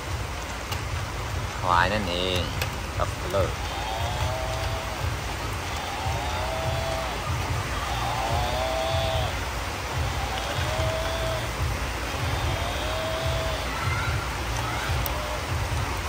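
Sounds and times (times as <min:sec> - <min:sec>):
rain hissing: 0:00.0 - 0:16.0
toy electronic sound clip: 0:10.0 - 0:13.7.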